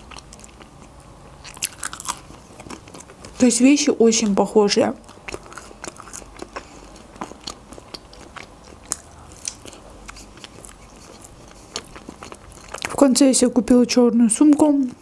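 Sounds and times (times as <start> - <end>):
chewing crunchy pizza: 0.0 - 13.3.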